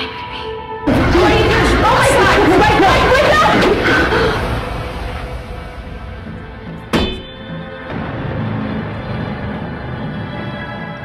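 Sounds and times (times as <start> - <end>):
dark dramatic score music: 0.0 - 11.0
sharp metallic clang: 6.9 - 7.6.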